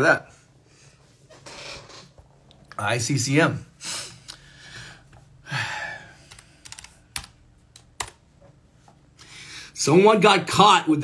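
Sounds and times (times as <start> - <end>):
computer keyboard key clicks: 6.3 - 8.2.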